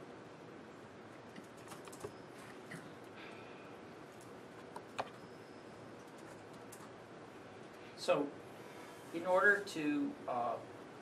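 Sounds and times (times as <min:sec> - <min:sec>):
laptop keyboard typing: 0:01.3 - 0:02.1, 0:06.0 - 0:07.0.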